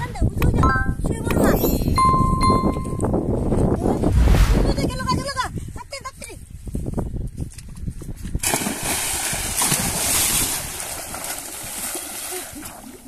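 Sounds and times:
big water splash: 0:08.4 - 0:12.4.

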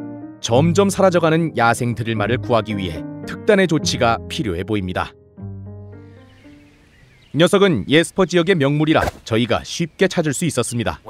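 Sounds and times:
held music chord: 0:00.0 - 0:06.8.

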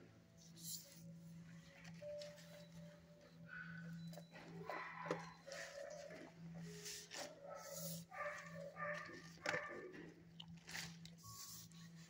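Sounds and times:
dogs whining and barking: 0:02.4 - 0:11.4.

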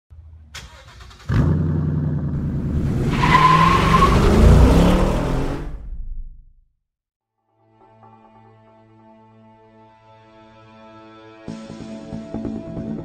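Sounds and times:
car engine starting and revving: 0:00.6 - 0:06.5
high squeal: 0:02.8 - 0:05.6.

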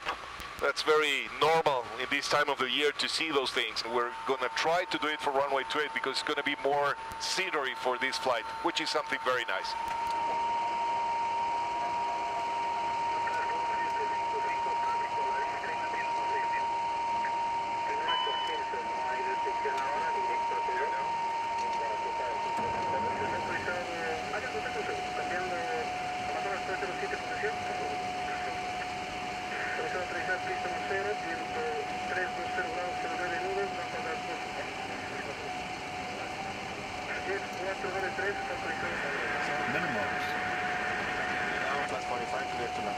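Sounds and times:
airflow and jet engine noise: 0:00.0 - 0:42.9
steady whine: 0:00.0 - 0:42.9
indistinct voices: 0:17.9 - 0:28.9, 0:37.1 - 0:42.9.

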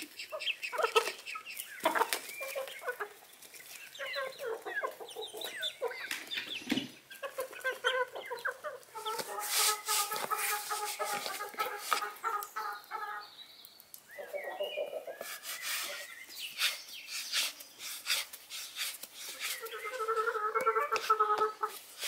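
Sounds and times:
chickens clucking: 0:00.0 - 0:22.0.

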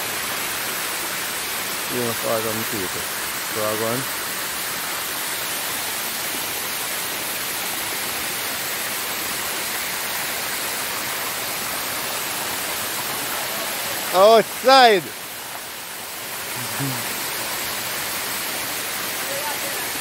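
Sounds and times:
waterfall rushing: 0:00.0 - 0:20.0.

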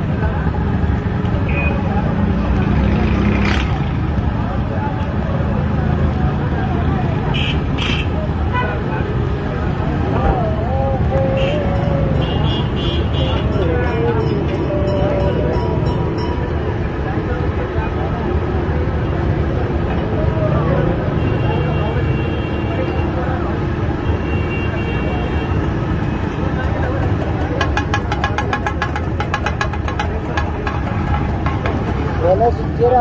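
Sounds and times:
traffic: 0:00.0 - 0:33.0
voices: 0:00.0 - 0:33.0
spatulas clacking on griddle: 0:26.6 - 0:32.2.

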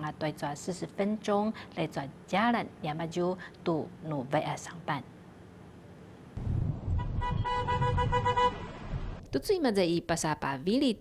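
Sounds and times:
vehicle low rumble: 0:06.4 - 0:09.4
vehicle horn: 0:06.9 - 0:08.8.

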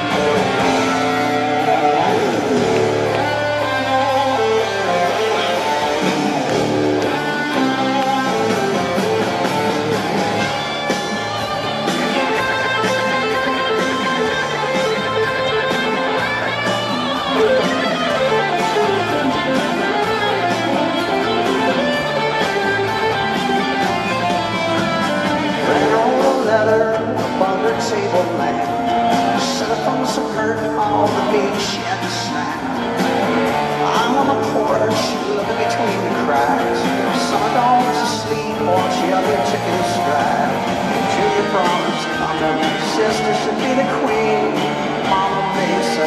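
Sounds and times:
electric guitar: 0:00.0 - 0:46.0
live rock band playing: 0:00.0 - 0:46.0.

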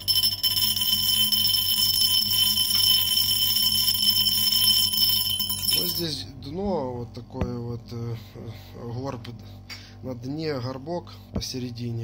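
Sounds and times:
nail rattling in glass jar: 0:00.0 - 0:06.1
magnetic stirrer hum: 0:00.0 - 0:12.0.

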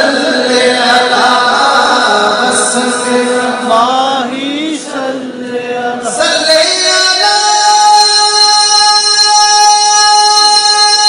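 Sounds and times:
man singing devotional melody: 0:00.0 - 0:11.0.

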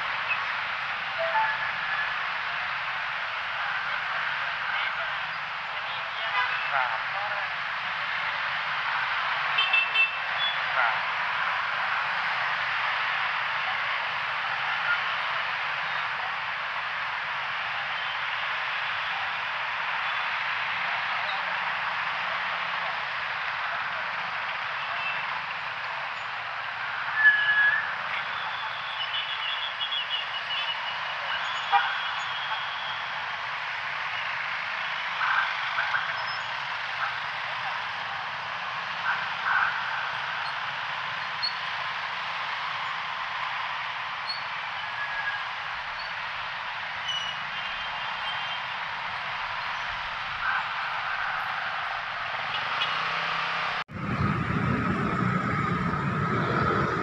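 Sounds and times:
dense city traffic: 0:00.0 - 0:57.0.

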